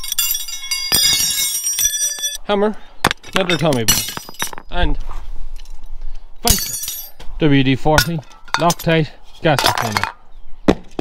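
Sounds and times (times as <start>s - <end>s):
metal tools clattering on concrete: 0.0s - 2.4s, 3.2s - 4.8s, 6.5s - 7.2s, 8.0s - 10.2s.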